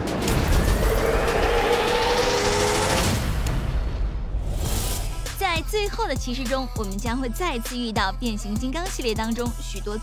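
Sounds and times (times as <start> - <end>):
cinematic hit: 0.0 - 5.2
rising pitch sweep: 0.4 - 3.2.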